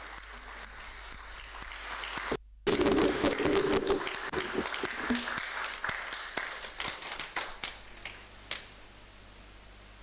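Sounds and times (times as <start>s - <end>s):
audience applause: 0.0s - 8.2s.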